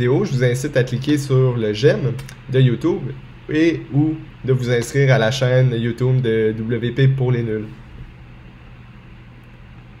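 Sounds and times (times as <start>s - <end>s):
faint constant hum: 0.0s - 10.0s
low room hiss: 0.0s - 10.0s.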